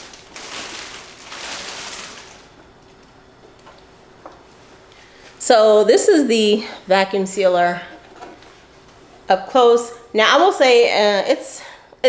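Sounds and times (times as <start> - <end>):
plastic bag crinkling: 0.0 - 3.9.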